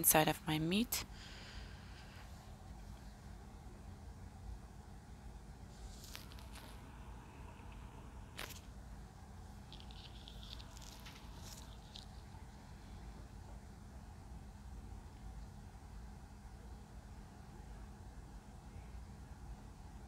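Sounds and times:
low steady hum: 0.0 - 20.0
crackling: 5.8 - 8.8, 9.5 - 12.8.

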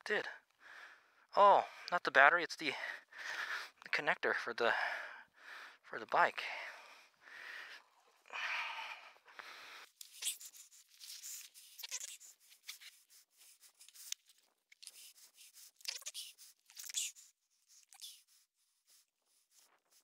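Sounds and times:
gloves rustling: 9.2 - 20.0
clicks and scrapes of parts: 13.7 - 15.2.

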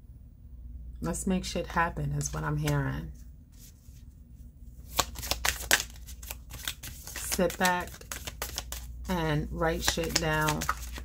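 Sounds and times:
cards being shuffled: 4.8 - 11.0.

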